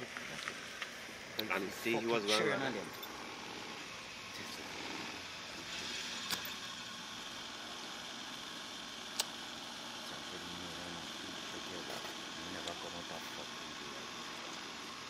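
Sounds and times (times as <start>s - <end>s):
sharp clicks: 6.2s - 6.6s, 9.1s - 9.4s.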